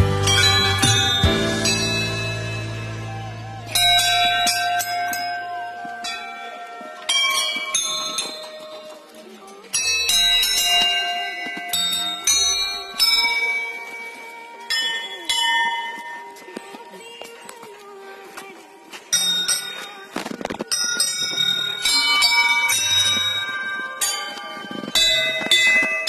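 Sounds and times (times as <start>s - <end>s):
brass bells ringing: 0.0s - 9.1s, 20.7s - 26.0s.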